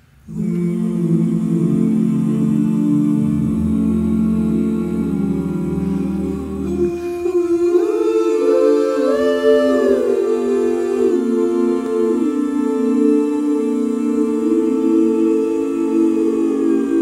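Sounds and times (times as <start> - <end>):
male chorus humming chords: 0.0 - 17.0.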